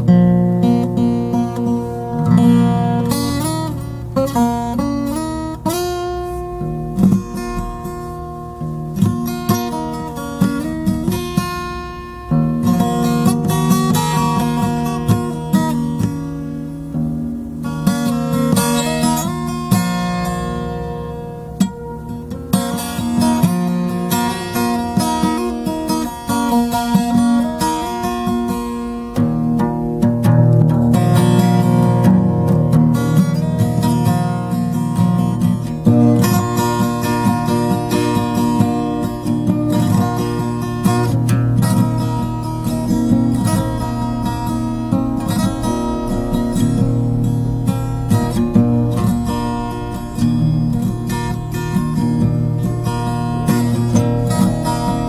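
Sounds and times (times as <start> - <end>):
acoustic guitar picked and strummed: 0.0 - 55.0.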